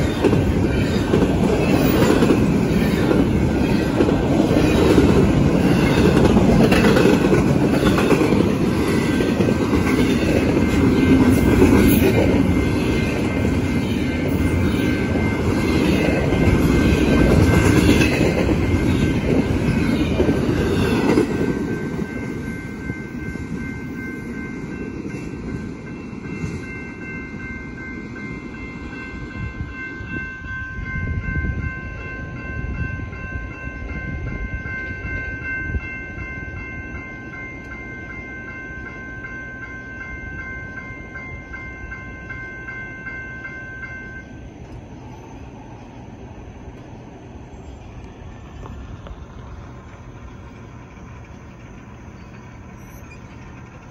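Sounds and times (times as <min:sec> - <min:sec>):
train wheels clattering: 0:00.0 - 0:27.1, 0:47.7 - 0:53.9
crossing warning bell ringing: 0:00.0 - 0:53.9.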